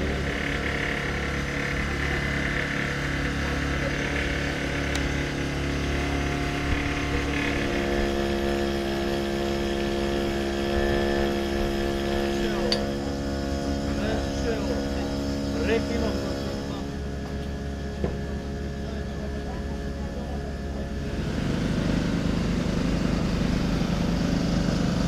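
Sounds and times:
people's voices: 0.0 - 5.9, 12.2 - 21.7
motor running: 0.0 - 25.0.

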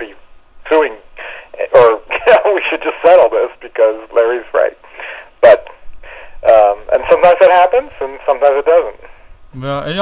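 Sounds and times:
men talking over telephone: 0.0 - 10.0.

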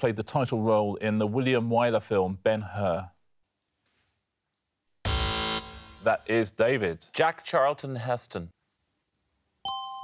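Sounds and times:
quiz buzzer: 5.0 - 6.1.

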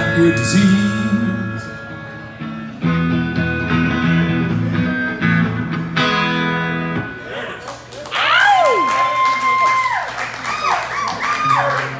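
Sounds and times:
audience clapping and cheering: 7.6 - 11.9.

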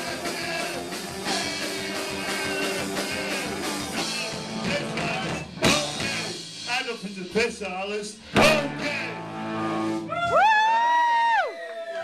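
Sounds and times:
rock band playing loudly: 0.0 - 10.5.

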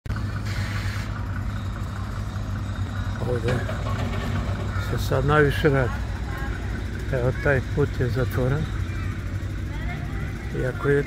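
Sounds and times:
traffic engines rumbling: 0.0 - 11.0.

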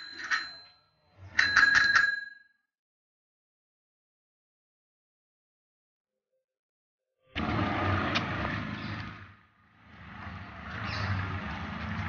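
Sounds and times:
bicycle bell ringing: 0.0 - 2.6.

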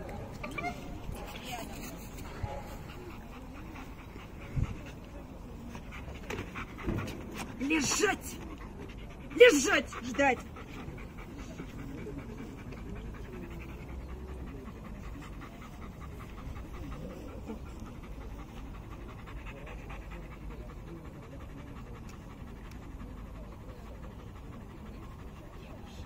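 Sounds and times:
dog panting: 0.0 - 26.0.

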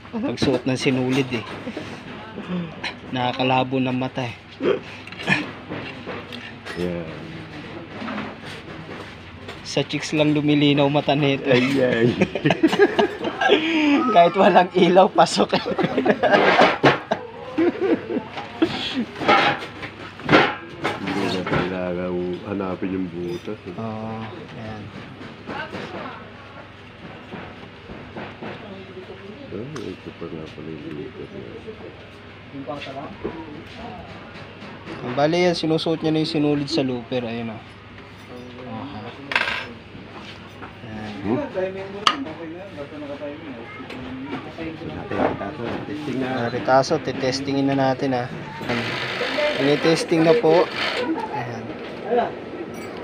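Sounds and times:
men talking: 0.2 - 1.8, 6.4 - 7.5, 9.6 - 19.2, 20.9 - 25.0, 29.5 - 34.1, 35.0 - 39.2, 40.7 - 43.8, 44.5 - 52.5
men laughing: 11.4 - 19.2.

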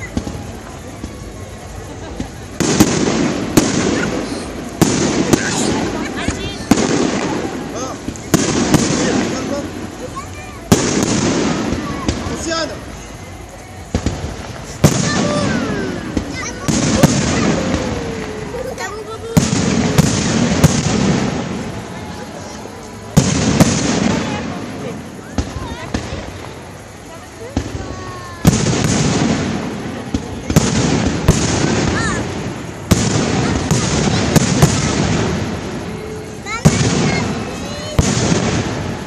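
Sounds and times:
firework shells bursting: 0.0 - 39.0.

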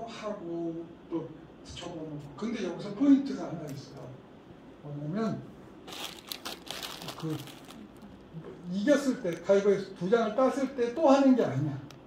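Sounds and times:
plastic snack packet crinkling: 5.9 - 8.3.

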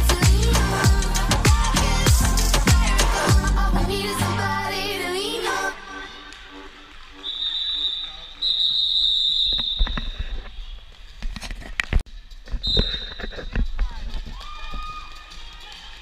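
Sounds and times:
referee's whistle blasts: 7.2 - 10.8.

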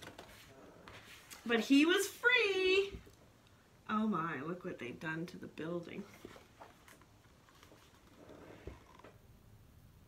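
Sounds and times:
faint room hum: 0.0 - 10.0.

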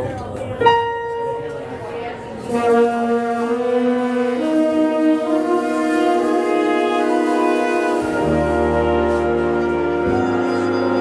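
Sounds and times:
jazz big band horn chords: 2.4 - 11.0
low bass notes: 2.4 - 11.0.

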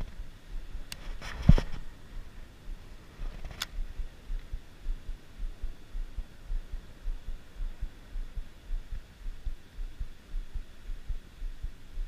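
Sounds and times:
low irregular rumble: 0.0 - 12.0.

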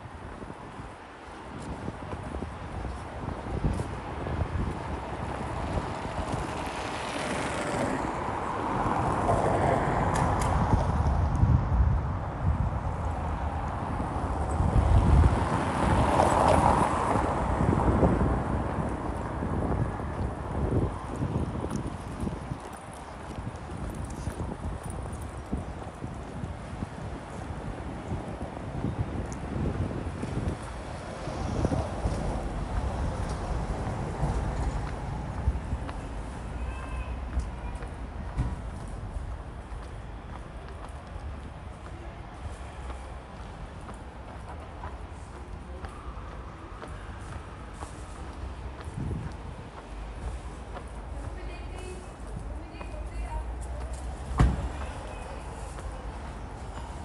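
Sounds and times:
vehicles passing: 0.0 - 57.0
wind buffeting microphone: 0.0 - 57.0
footsteps on pavement: 0.2 - 57.0.

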